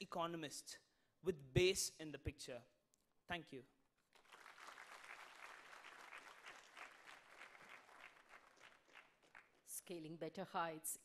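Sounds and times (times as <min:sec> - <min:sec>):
audience applause: 0:04.2 - 0:09.6.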